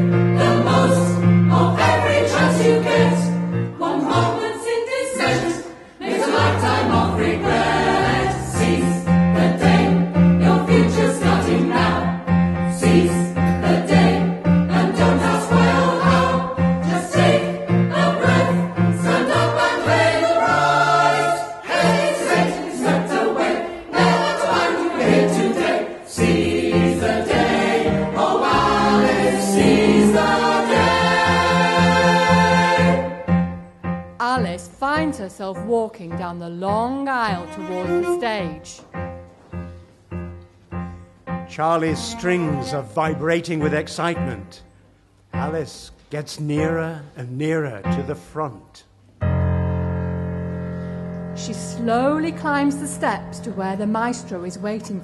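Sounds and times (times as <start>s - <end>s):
mixed choir singing: 0.0s - 33.4s
low held accompaniment notes: 6.4s - 44.7s.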